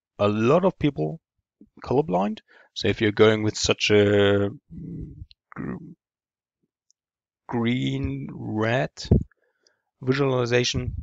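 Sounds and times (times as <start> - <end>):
man speaking: 0.2 - 1.2, 1.8 - 6.0, 7.5 - 9.3, 10.0 - 11.0.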